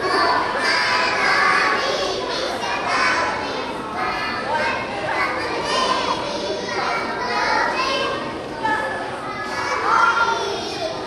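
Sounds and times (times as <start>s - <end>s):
children singing together: 0.0s - 8.4s, 9.4s - 11.0s.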